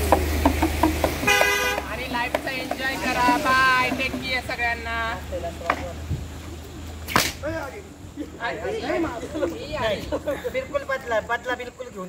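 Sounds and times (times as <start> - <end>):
rope cracking like a whip: 7.0 - 7.5.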